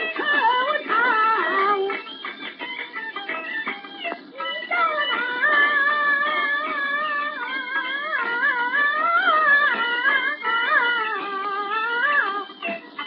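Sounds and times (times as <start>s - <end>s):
instrumental accompaniment: 0.0s - 13.0s
high voice singing opera: 4.4s - 12.5s.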